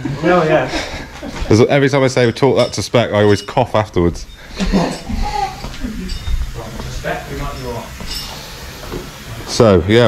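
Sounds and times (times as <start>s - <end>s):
men's voices and laughter: 0.0s - 2.5s, 4.4s - 6.0s
people talking: 1.5s - 7.9s.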